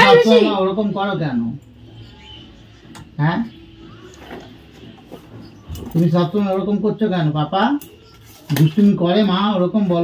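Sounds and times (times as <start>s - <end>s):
conversational speech: 0.0s - 1.6s.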